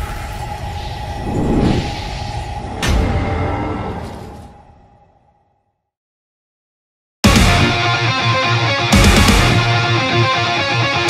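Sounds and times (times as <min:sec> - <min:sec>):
whoosh: 0:00.0 - 0:05.2.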